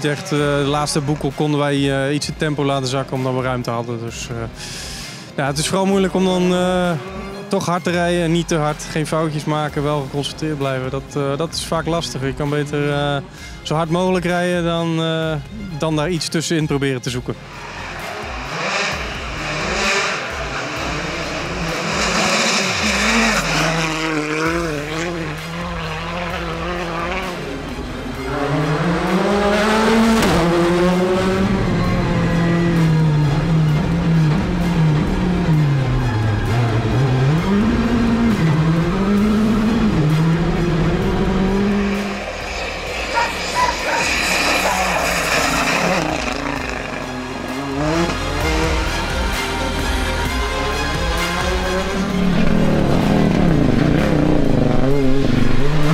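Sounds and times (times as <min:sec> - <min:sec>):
rally car engine at full throttle: 0:00.0 - 0:55.9.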